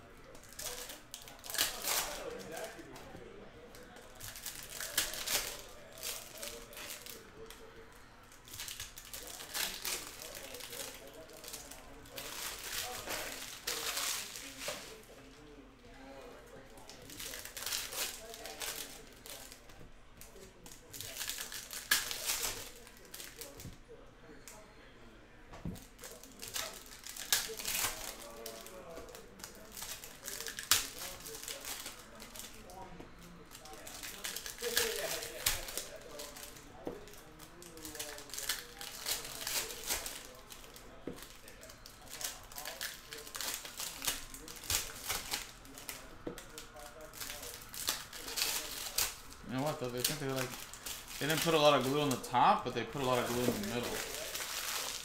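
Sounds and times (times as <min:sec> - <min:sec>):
foil wrappers crackling: 0:00.2 - 0:24.6, 0:25.6 - 0:55.0.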